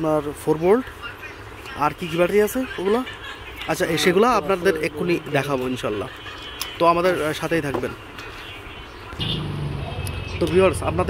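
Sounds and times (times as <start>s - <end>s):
vehicle engine droning: 9.1s - 11.0s.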